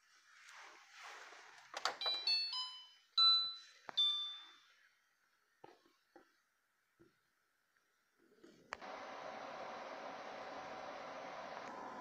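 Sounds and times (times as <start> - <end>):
chime-like tones: 2.0 - 4.7.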